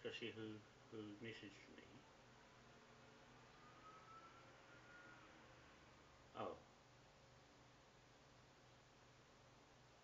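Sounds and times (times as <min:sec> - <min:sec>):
low steady hum: 0:00.0 - 0:10.0
faint thin high tone: 0:03.4 - 0:06.6.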